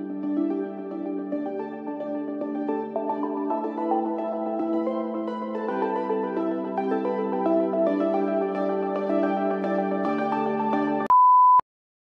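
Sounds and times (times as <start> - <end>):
calm music: 0.0 - 11.1.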